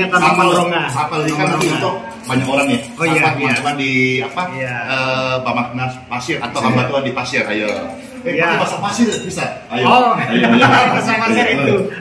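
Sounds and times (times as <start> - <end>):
man talking: 0.0 - 12.0.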